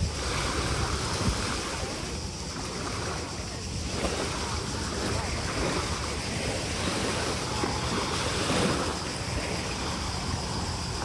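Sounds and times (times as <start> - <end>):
small waves lapping on sand: 0.0 - 11.0
wind buffeting microphone: 0.0 - 11.0.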